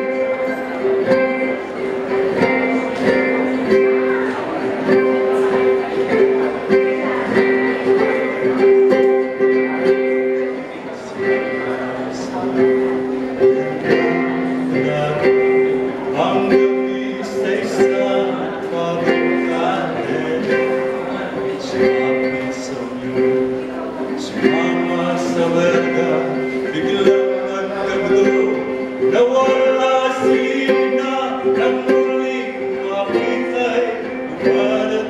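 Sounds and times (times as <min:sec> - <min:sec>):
ukulele strumming: 0:00.0 - 0:35.0.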